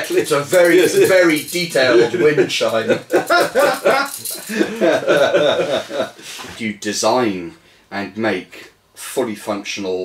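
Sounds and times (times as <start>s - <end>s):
men laughing heartily: 0.8s - 6.4s.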